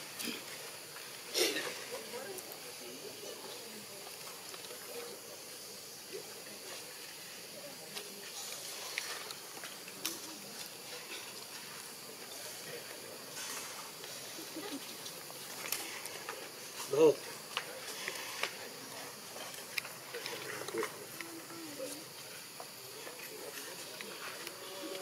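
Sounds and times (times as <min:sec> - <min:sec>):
faint distant voices: 0:00.0 - 0:25.0
faint high hiss: 0:00.0 - 0:25.0.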